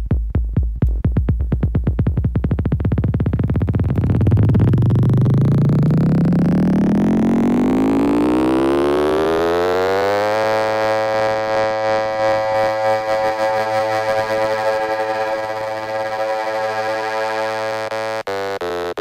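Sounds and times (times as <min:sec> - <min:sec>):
house music: 0:00.0 - 0:19.0
synthesizer sweep rising in pitch: 0:02.9 - 0:18.4.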